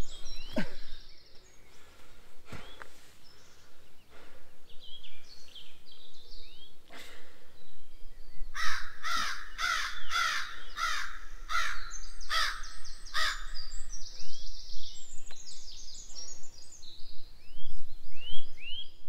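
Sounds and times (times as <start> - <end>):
small birds chirping: 0.0 - 19.0
crow cawing: 8.6 - 13.5.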